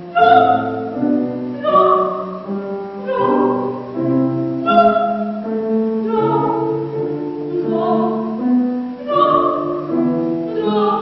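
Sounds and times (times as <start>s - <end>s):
piano accompaniment: 0.0s - 11.0s
woman singing classical song: 0.0s - 11.0s.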